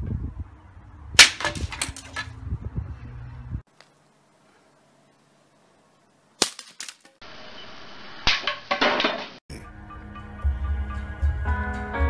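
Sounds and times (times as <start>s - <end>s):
wooden bow cracking: 1.2s - 2.3s, 6.4s - 7.2s
background music: 9.5s - 12.0s.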